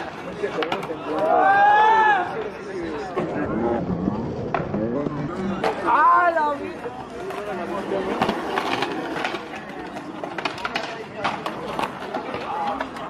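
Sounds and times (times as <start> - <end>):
crowd chatter: 0.0 - 13.0
skateboard wheels rolling on concrete: 0.0 - 13.0
skateboards clacking on ground: 0.0 - 13.0.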